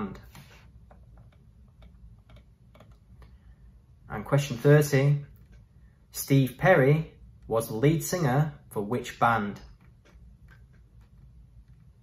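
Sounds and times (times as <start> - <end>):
man talking: 0.0 - 0.3, 4.0 - 5.3, 6.1 - 9.8.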